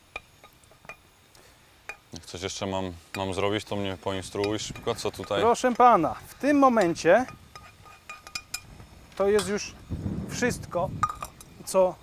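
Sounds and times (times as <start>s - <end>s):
utensils clinking against dishes: 4.2s - 9.7s.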